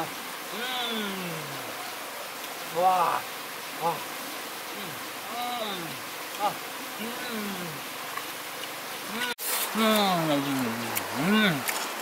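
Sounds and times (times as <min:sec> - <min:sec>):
man humming: 0:00.0 - 0:01.7, 0:04.7 - 0:07.8, 0:09.1 - 0:11.7
river rushing: 0:00.0 - 0:12.0.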